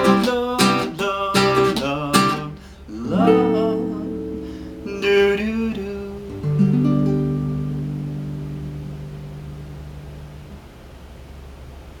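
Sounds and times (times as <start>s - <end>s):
faint hiss: 0.0s - 12.0s
classical guitar chord ringing: 2.9s - 10.6s.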